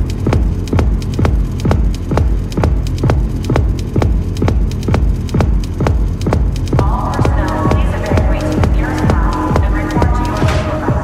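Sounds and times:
electronic dance music: 0.0s - 11.0s.

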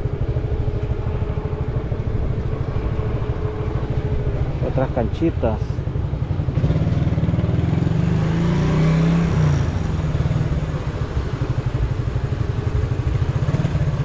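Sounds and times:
motorcycle engine running: 0.0s - 14.0s.

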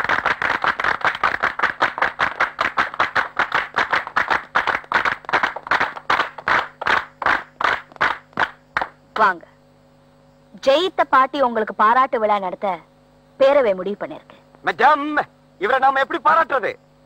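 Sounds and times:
crowd clapping in unison: 0.0s - 9.0s.

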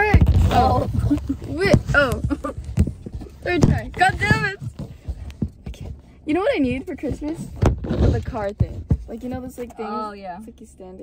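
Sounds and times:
women talking: 0.0s - 2.5s, 3.4s - 4.7s, 5.6s - 11.0s.

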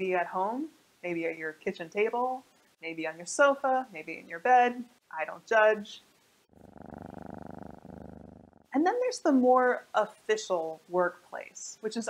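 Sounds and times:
cat purring: 6.4s - 8.8s.

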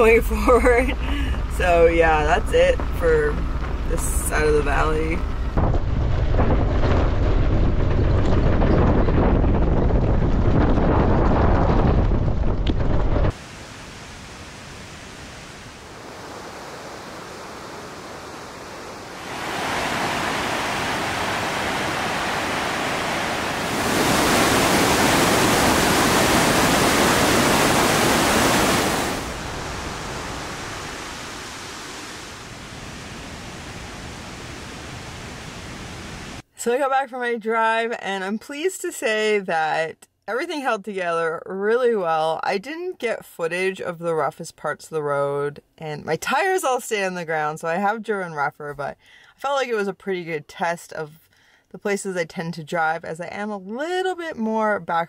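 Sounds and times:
low rumble: 0.0s - 13.4s
wind buffeting microphone: 0.0s - 36.4s
mountain creek rushing: 13.3s - 36.4s.

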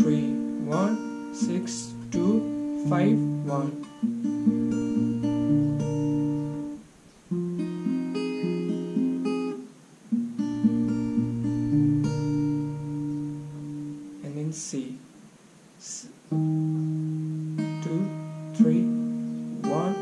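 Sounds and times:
fingerpicked acoustic guitar: 0.0s - 20.0s.

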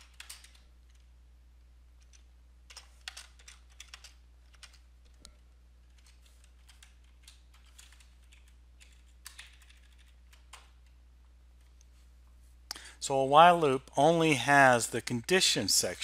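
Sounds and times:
typing on computer keyboard: 0.0s - 1.0s, 2.0s - 11.0s
steady low hum: 0.0s - 16.0s.

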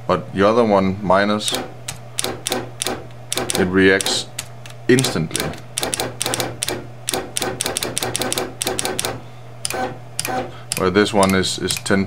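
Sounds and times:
steady low hum: 0.0s - 12.0s
pushbutton double clicks: 1.5s - 11.4s.

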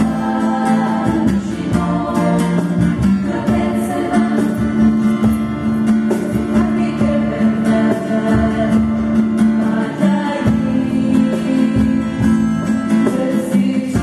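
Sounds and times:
choir singing a slow hymn: 0.0s - 5.3s, 6.1s - 14.0s
strummed acoustic guitar: 0.0s - 14.0s.

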